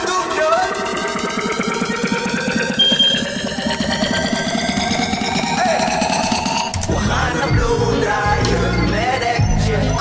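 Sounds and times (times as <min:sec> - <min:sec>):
fast buzzing synth pulse: 0:00.0 - 0:06.8
rising synth sweep: 0:00.0 - 0:09.4.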